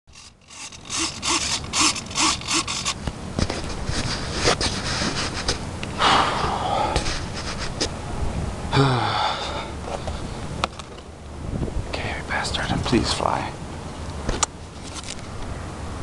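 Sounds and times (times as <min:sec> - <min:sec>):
rhythmic rasping strokes: 0:00.1 - 0:03.0
handheld camera rustling and knocks: 0:00.1 - 0:05.7, 0:14.2 - 0:15.3.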